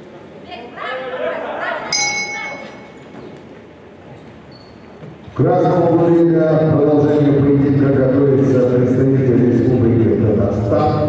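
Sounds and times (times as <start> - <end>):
voices in a large hall: 0.0 - 11.0
boxing ring bell ringing: 1.9 - 3.1.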